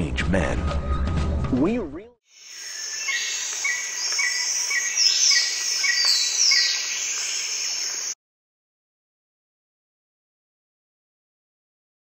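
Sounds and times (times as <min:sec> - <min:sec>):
insects: 0:02.3 - 0:08.2
falling whistled bird calls: 0:02.6 - 0:08.2.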